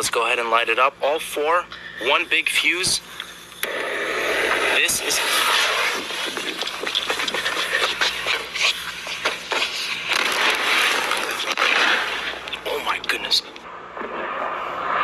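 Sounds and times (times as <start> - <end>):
fireworks hissing sparks: 3.6 - 12.5
fireworks crackling and popping: 3.6 - 13.3.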